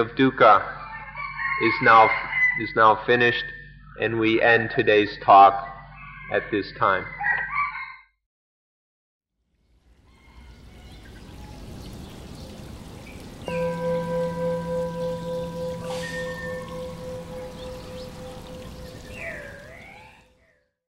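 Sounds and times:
faint hiss like rain: 9.6 - 20.2
bell ringing with pulsing hum: 13.5 - 20.2.

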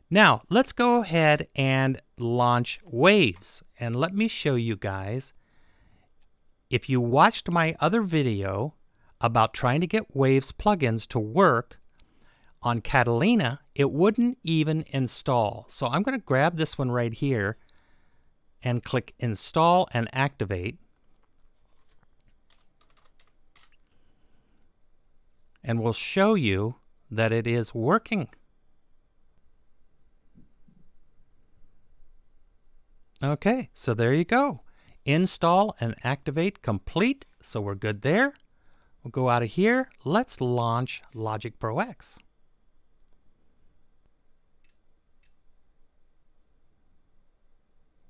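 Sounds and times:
keystrokes on computer keyboard: 21.2 - 24.0.

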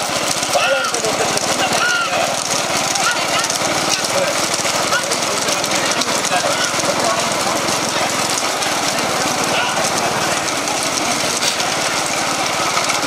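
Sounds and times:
motorcycle engines running: 0.0 - 13.0
people shouting: 0.3 - 13.0.

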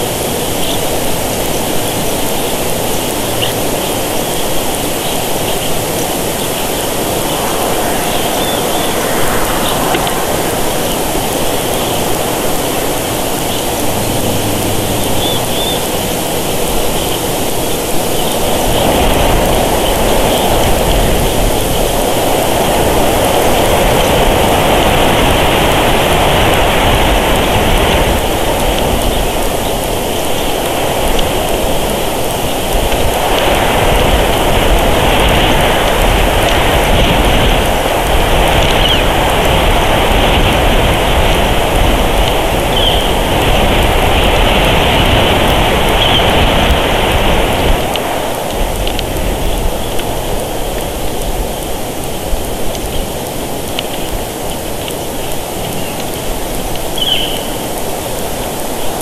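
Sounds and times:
wind across microphone: 0.0 - 59.0
wind in pine trees: 0.0 - 59.0.

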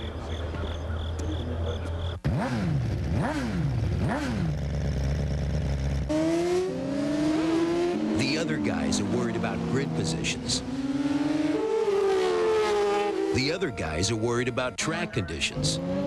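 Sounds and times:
motorcycle engines: 0.0 - 16.0.

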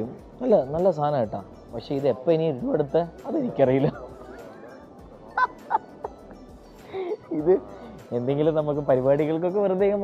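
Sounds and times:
man laughing: 5.3 - 6.2.

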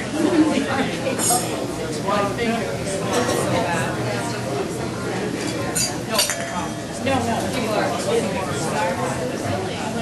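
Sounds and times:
murmur of diners' conversation: 0.0 - 10.0
cutlery and dishes clinking: 5.4 - 6.9.

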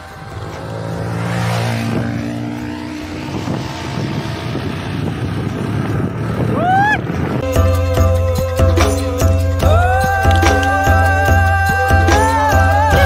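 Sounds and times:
wind rushing over microphone: 0.0 - 8.2
motorcycles riding past: 0.0 - 13.0.

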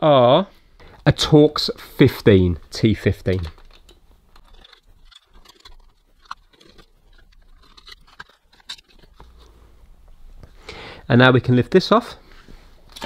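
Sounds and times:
screwdriver clicking and scraping: 3.1 - 9.5.

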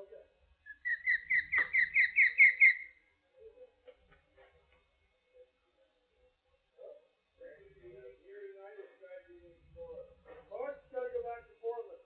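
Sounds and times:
osprey whistled chirps: 0.7 - 3.0.

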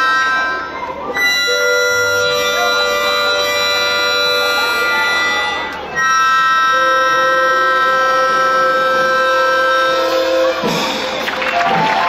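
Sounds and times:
harmonica chord: 0.0 - 11.2.

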